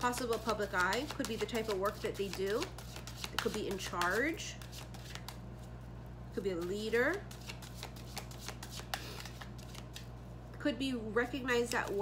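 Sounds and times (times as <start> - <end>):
cards shuffled by hand: 0.0 - 5.7, 6.6 - 10.2.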